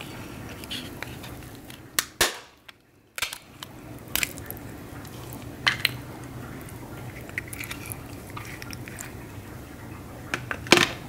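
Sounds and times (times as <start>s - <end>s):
crab shell cracking: 0.4s - 9.4s
shell crunching: 0.5s - 9.2s.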